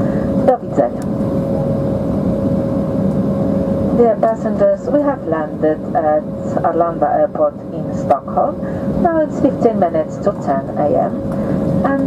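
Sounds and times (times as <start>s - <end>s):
airplane cabin rumble: 0.0s - 12.0s
mid-pitched hum: 0.0s - 12.0s.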